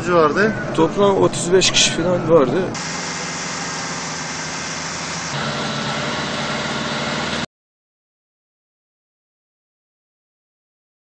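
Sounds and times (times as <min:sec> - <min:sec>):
deep engine hum: 0:00.0 - 0:07.5
vehicle engines idling: 0:00.0 - 0:07.5.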